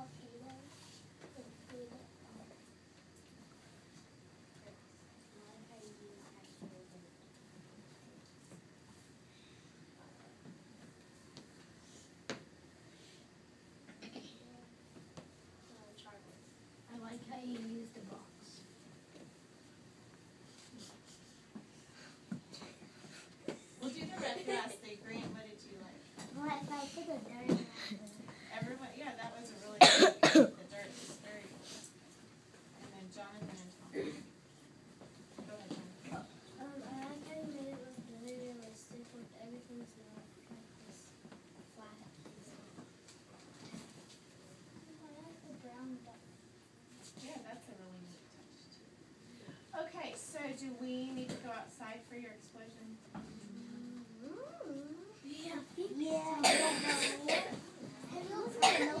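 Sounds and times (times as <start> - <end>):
person coughing: 29.8 - 30.6, 56.4 - 57.6, 58.6 - 59.0
faint talk: 53.2 - 59.0
children's voices: 53.4 - 59.0.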